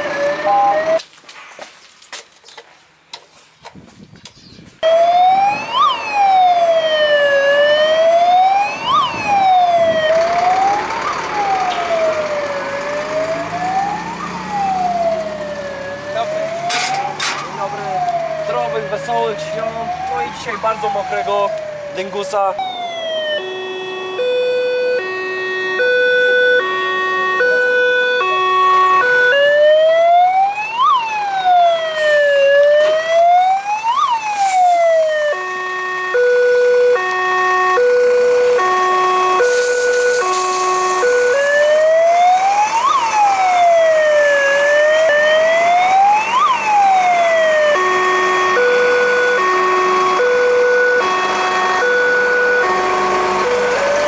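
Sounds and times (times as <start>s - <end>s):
two-tone hi-lo siren: 0.0s - 1.0s, 4.8s - 54.0s
wailing siren: 0.0s - 1.0s, 4.8s - 54.0s.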